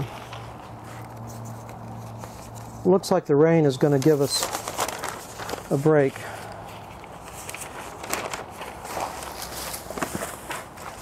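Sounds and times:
newspaper rustling: 0.0 - 3.1, 3.7 - 11.0
plastic bag crinkling: 3.9 - 11.0.

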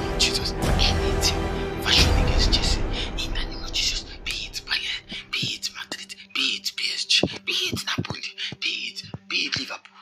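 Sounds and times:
person whispering a prayer: 1.8 - 10.0.

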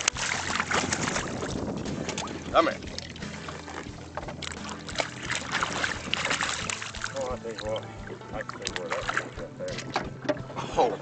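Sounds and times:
fish splashing in water: 0.0 - 10.1.

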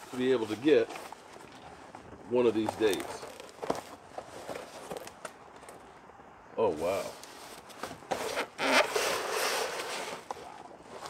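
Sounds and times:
bubble wrap crinkling: 2.6 - 5.4
wooden board scraping cardboard: 7.1 - 11.0.

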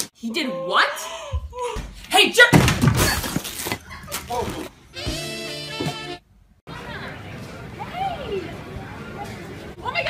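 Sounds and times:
woman yelling: 0.2 - 2.6.

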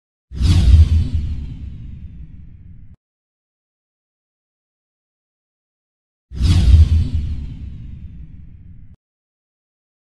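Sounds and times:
cinematic whoosh: 6.4 - 8.6.

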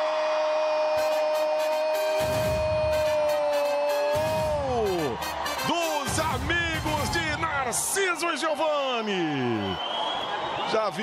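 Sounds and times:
commentator shouting goal: 0.8 - 9.6
excited commentary: 0.8 - 9.8.

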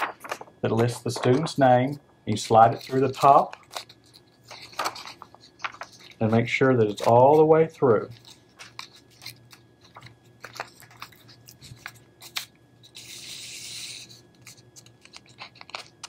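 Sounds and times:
paper and plastic crinkling: 0.0 - 16.0.

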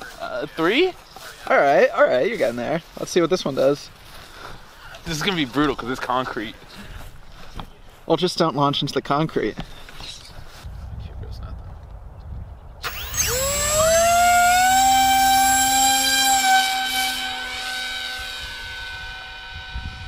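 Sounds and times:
low rumble: 10.6 - 14.2
electric motor and propeller whine: 12.8 - 20.0.

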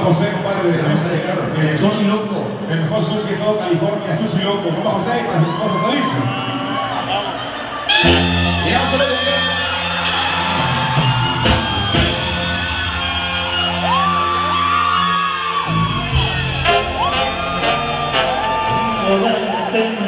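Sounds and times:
people whooping: 5.2 - 20.0
brass band playing: 7.7 - 20.0
tuba bass line: 7.9 - 13.9, 15.7 - 19.6.

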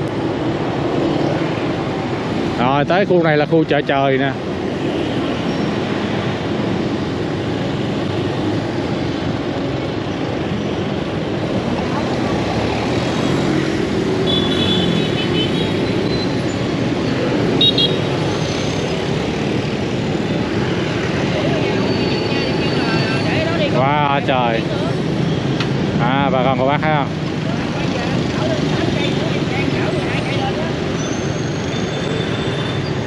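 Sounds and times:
motorbike and scooter traffic: 0.0 - 33.0
truck: 30.4 - 33.0.

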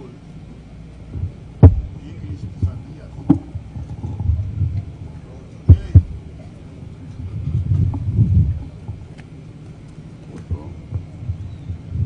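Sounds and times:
low rumbling thuds on microphone: 1.1 - 6.5, 7.1 - 9.2, 10.4 - 12.0.

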